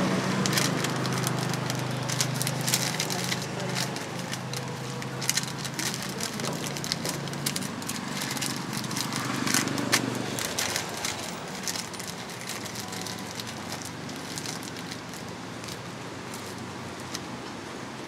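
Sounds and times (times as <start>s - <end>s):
paper crinkling: 0.3s - 17.3s.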